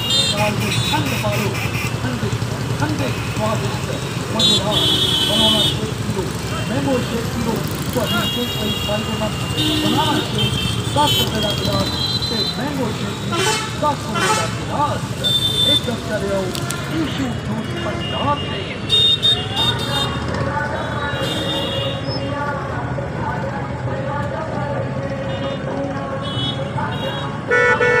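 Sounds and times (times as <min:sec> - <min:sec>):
vehicle horns beeping: 0:00.0 - 0:02.2, 0:03.0 - 0:07.2, 0:07.8 - 0:16.1, 0:16.8 - 0:22.3, 0:25.1 - 0:28.0
crowd voices: 0:00.0 - 0:27.5
passing engines hum: 0:00.0 - 0:28.0
slow street traffic: 0:00.0 - 0:28.0.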